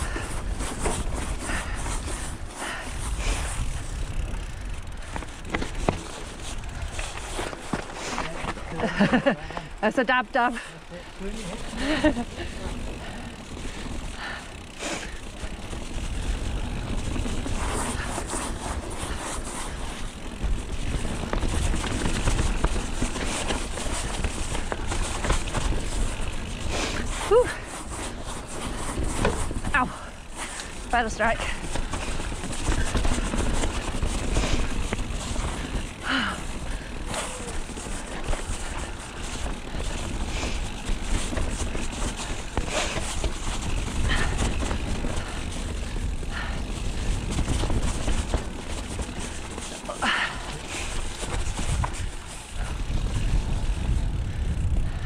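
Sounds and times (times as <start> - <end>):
bike rattles and knocks: 0.0 - 55.0
bike tyres rumbling on dirt: 0.0 - 55.0
wind buffeting microphone: 37.6 - 55.0.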